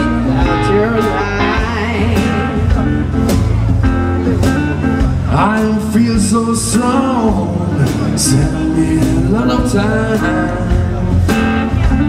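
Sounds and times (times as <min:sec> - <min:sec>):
bass guitar: 0:00.0 - 0:12.0
drum kit: 0:00.0 - 0:12.0
electric guitar with bent notes: 0:00.0 - 0:12.0.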